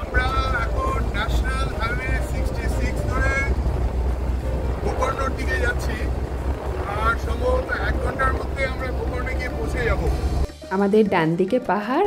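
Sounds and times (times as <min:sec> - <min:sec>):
engine and road noise rumble: 0:00.0 - 0:10.6.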